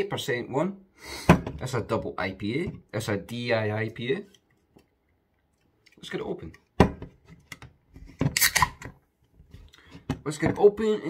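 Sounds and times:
can opening crack and hiss: 0:08.4 - 0:08.8.

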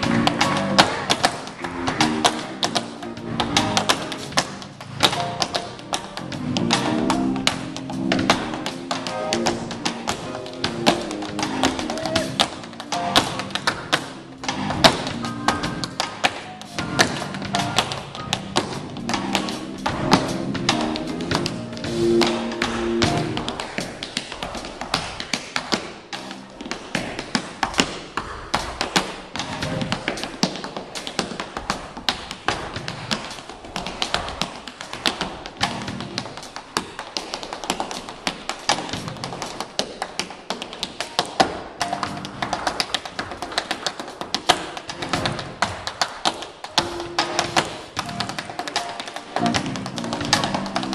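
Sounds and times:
piano: 0:00.0 - 0:50.9
tap shoes on wooden floor: 0:00.0 - 0:50.9.

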